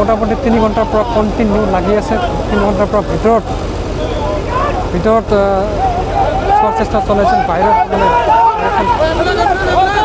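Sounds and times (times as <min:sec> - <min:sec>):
diesel engine droning: 0:00.0 - 0:10.0
men calling out: 0:00.0 - 0:10.0.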